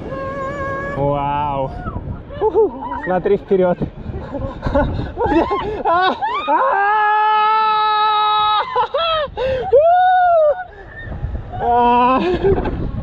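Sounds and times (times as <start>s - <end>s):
people screaming: 5.2s - 12.4s.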